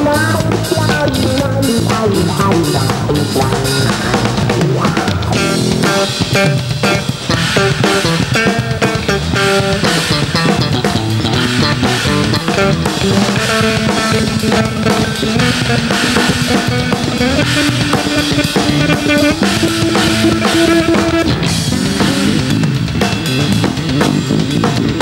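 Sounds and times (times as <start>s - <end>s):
drum kit playing: 0.0s - 25.0s
electric bass guitars: 0.0s - 25.0s.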